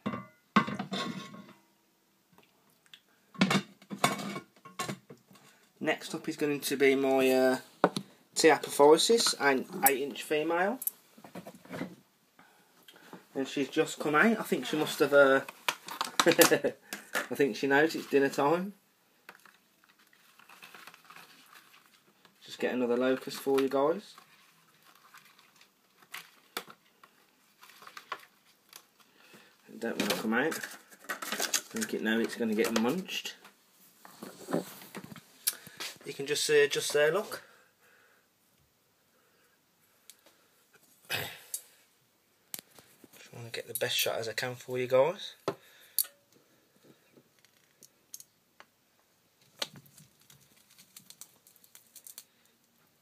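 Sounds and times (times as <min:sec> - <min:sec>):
small clicks and ticks: 0:49.6 - 0:52.6.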